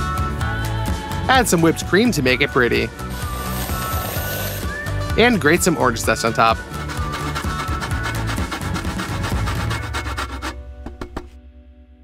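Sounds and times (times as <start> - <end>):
background music: 0.0 - 12.0
whipped cream can spraying: 3.0 - 4.8, 6.1 - 10.5.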